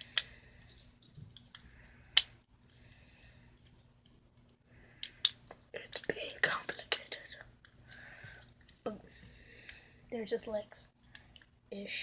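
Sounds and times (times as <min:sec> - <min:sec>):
soft whispering: 0:04.9 - 0:07.6.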